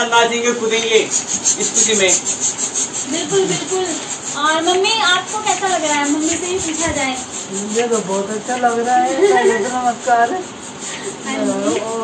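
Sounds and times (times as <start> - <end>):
balloon pump hissing air: 0.0 - 12.0.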